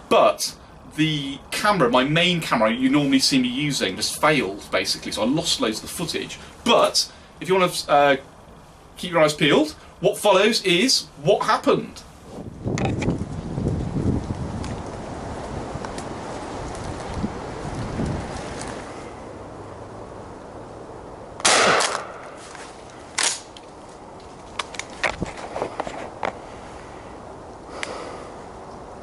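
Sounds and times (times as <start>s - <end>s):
shotgun bang: 21.4s - 22.4s
rustling handling noise: 22.2s - 26.5s.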